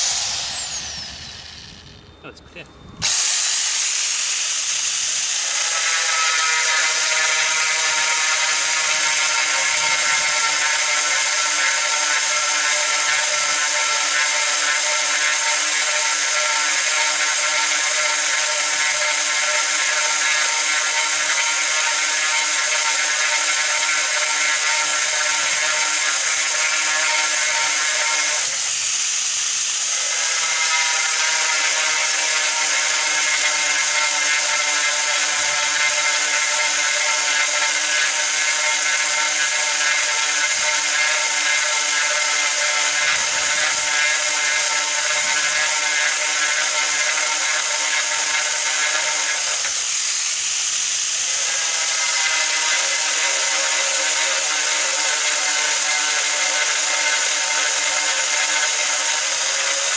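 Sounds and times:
angle grinder grinding tile: 0.0s - 1.8s, 3.0s - 59.9s.

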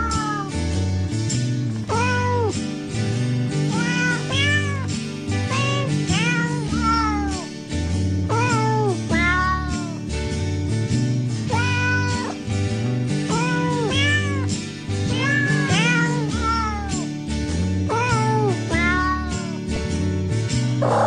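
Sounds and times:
cat meowing: 0.0s - 0.6s, 1.9s - 2.5s, 3.7s - 4.9s, 5.5s - 7.5s, 8.3s - 10.0s, 11.5s - 12.4s, 13.3s - 14.5s, 15.1s - 17.0s, 17.9s - 19.6s
music with steady bass line: 0.0s - 21.0s.

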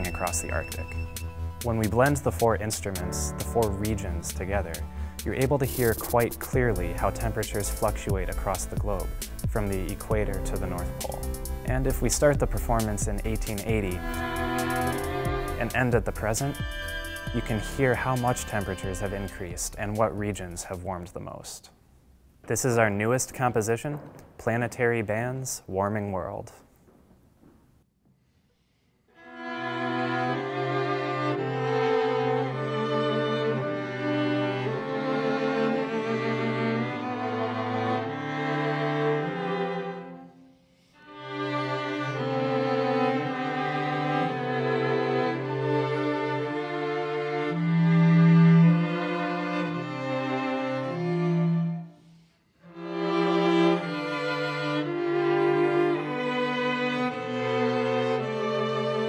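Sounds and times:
cello low sustained note: 0.0s - 20.1s
violins and viola bowed notes: 0.0s - 20.9s, 29.1s - 59.0s
string quartet chords: 0.0s - 21.0s, 29.1s - 59.0s.

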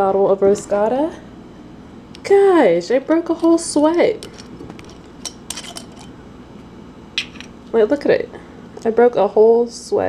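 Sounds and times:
metal screw cap clicks and scrapes: 4.2s - 6.1s.

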